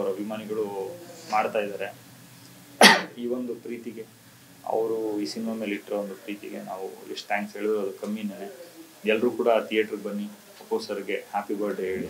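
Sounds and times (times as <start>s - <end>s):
murmur of voice: 0.0s - 2.0s, 2.7s - 12.0s
man coughing: 2.8s - 3.1s.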